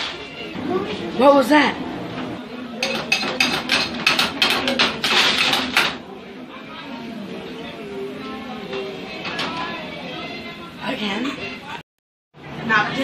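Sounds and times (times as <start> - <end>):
faint voices: 0.0 - 11.8
spoon clinking and scraping in pot: 2.8 - 5.9.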